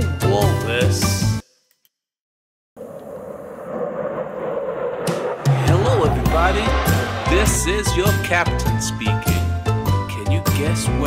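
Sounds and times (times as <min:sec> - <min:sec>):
airliner engine noise: 0:02.8 - 0:08.8.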